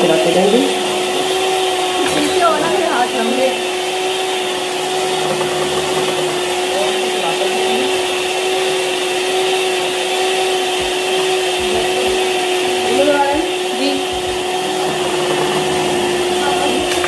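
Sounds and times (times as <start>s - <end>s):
electric hand mixer whining: 0.0s - 17.0s.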